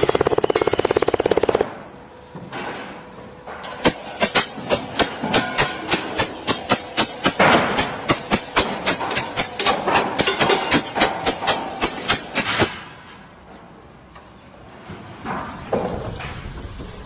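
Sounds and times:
sledgehammers clanking: 3.5s - 12.9s.

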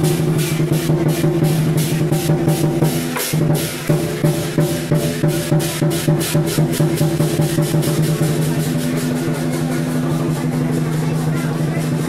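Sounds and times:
drum and cymbal beats: 0.0s - 12.0s.

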